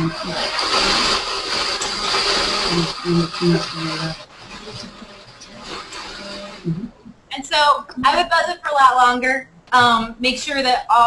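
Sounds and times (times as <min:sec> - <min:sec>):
muffled blender mixing: 0:00.0 - 0:09.0.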